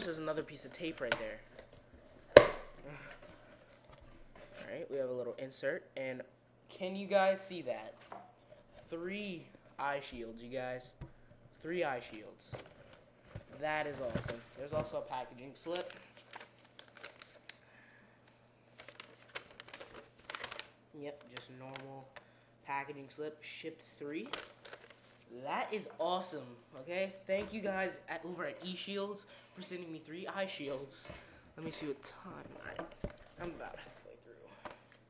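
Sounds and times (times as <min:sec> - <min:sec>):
paper rustling and crinkling: 0:12.0 - 0:17.6, 0:18.6 - 0:22.0, 0:24.2 - 0:25.3.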